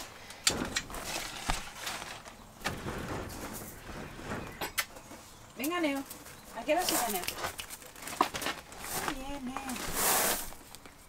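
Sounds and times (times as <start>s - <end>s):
sliding door knocking and rattling: 2.6s - 4.8s
door clatter: 2.6s - 5.1s.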